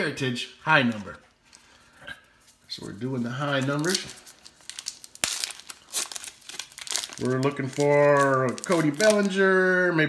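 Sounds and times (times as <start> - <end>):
plastic wrapper crinkling: 2.5 - 9.7.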